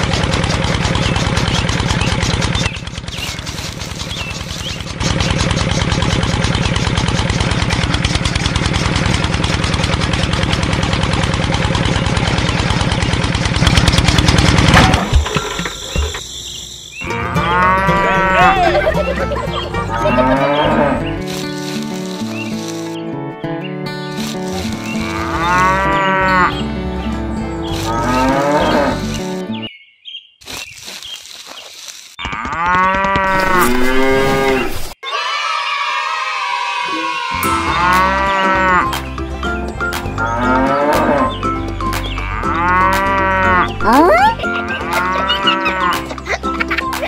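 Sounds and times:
cows mooing: 0:17.0 - 0:19.0, 0:19.8 - 0:21.2, 0:24.8 - 0:26.8, 0:27.7 - 0:29.4, 0:32.2 - 0:35.0, 0:37.6 - 0:39.0, 0:40.2 - 0:41.3, 0:42.2 - 0:46.1
background music: 0:17.0 - 0:29.7, 0:37.4 - 0:47.0.

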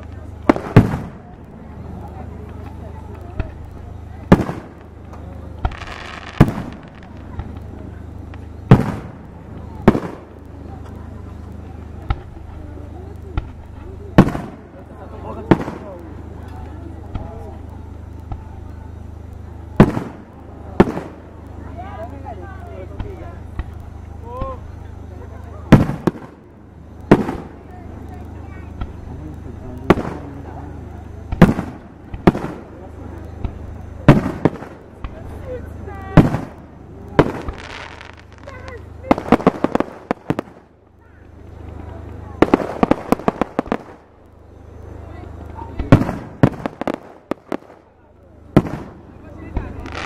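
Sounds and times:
fireworks bursting: 0:00.0 - 0:50.0
rapid crackling pops: 0:00.0 - 0:50.0
firework shells bursting: 0:31.0 - 0:35.4, 0:36.1 - 0:40.8, 0:41.5 - 0:44.9, 0:45.7 - 0:50.0.

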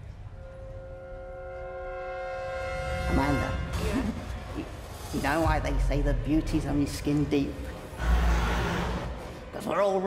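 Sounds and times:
horn-like held chord: 0:00.4 - 0:04.1.

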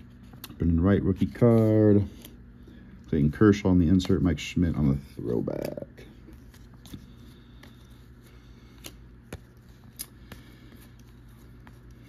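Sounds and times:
low room hum: 0:00.0 - 0:12.0
cards flicking and clicking: 0:03.4 - 0:04.4, 0:05.2 - 0:12.0.

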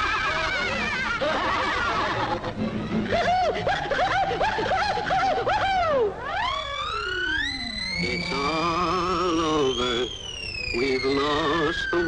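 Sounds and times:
high-pitched cartoon laughter: 0:00.0 - 0:06.6.

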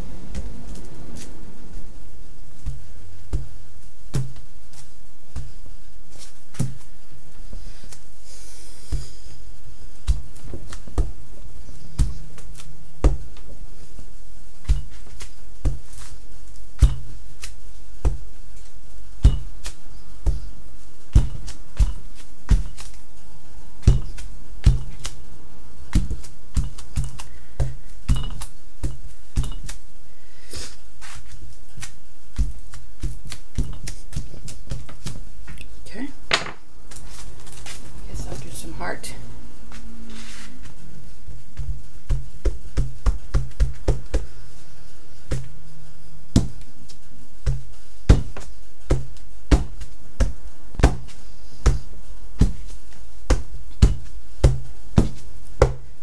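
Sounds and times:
steady low hum: 0:00.0 - 0:56.0
rubber stamps thumping and clicking: 0:21.1 - 0:23.0.

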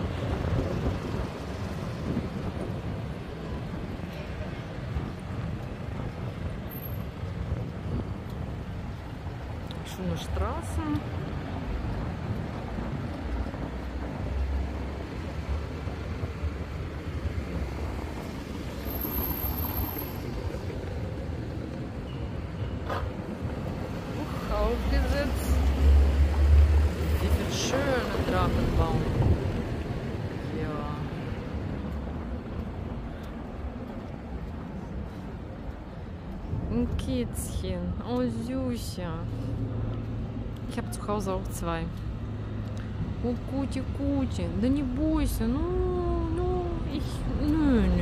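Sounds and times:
car and traffic rumble: 0:00.0 - 0:48.0
passers-by's voices: 0:00.0 - 0:48.0.

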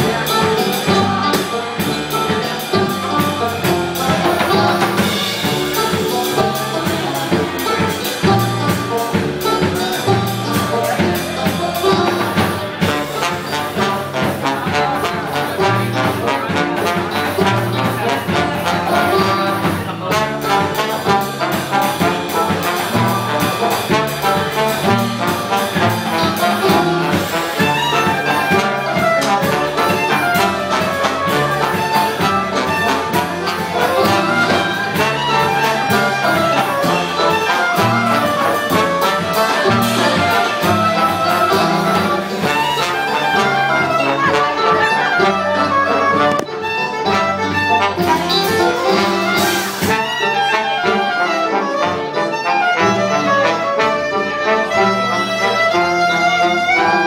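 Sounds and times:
swing jazz band playing: 0:00.0 - 0:57.0.

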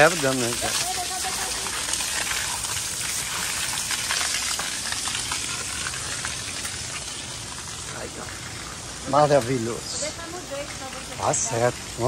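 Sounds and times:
rushing water hiss: 0:00.0 - 0:12.0.

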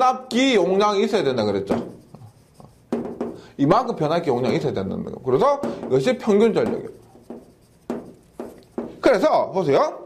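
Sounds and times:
chalk writing on blackboard: 0:01.6 - 0:09.2.

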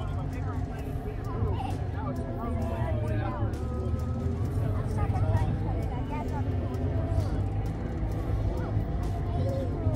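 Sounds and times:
tracked vehicle engine rumbling: 0:00.0 - 0:09.9.

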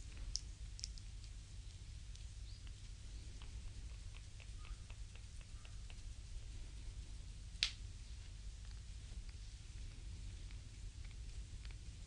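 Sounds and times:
low steady hum: 0:00.0 - 0:12.0
moist skin clicks: 0:00.3 - 0:01.4, 0:02.1 - 0:06.2.

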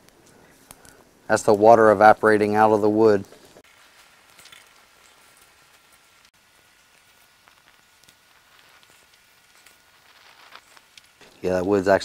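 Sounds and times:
wet firewood hissing and popping: 0:00.0 - 0:12.0.

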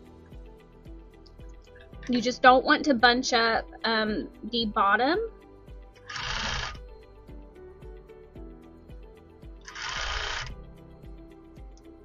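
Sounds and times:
background music: 0:00.0 - 0:12.0
sewing machine stitching: 0:06.1 - 0:06.8, 0:09.7 - 0:10.5.

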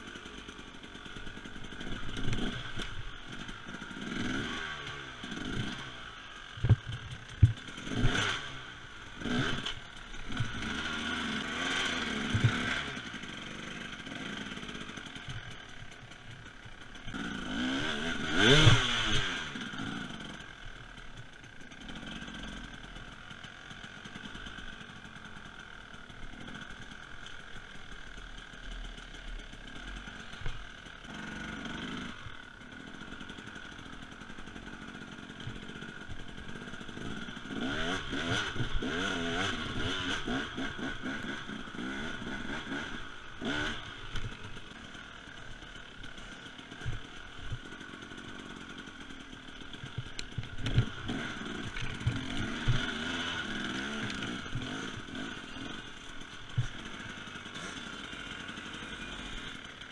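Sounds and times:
motorbike engine revving: 0:00.0 - 0:59.9
sharp knocks and clatter: 0:06.6 - 0:08.2, 0:12.2 - 0:12.9, 0:49.8 - 0:53.2.

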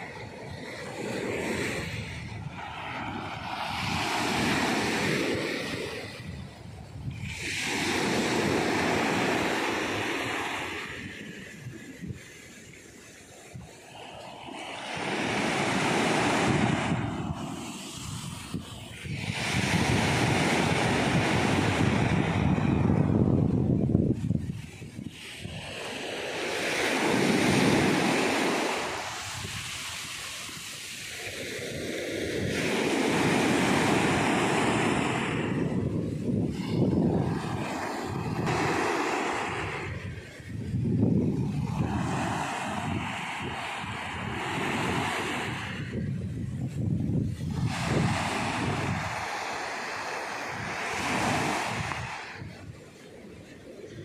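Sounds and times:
surf washing up a beach: 0:00.0 - 0:54.0.

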